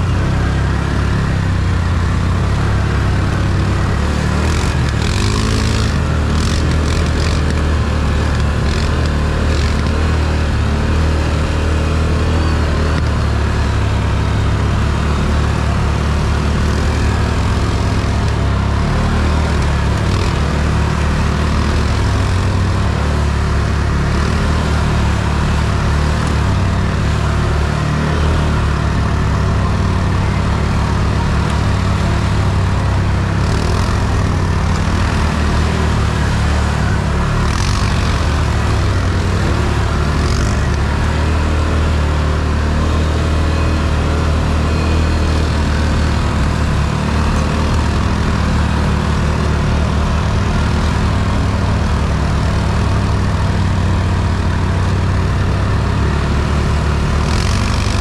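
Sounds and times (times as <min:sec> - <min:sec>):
atv engine running: 0:00.0 - 0:58.0.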